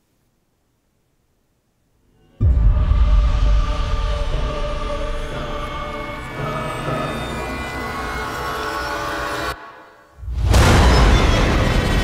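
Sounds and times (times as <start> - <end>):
horror soundtrack drone: 2.1 - 12.0.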